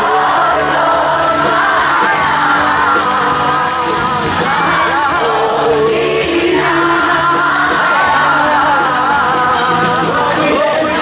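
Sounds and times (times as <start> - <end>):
live rock band playing: 0.0 - 11.0
man singing long held notes: 0.0 - 11.0.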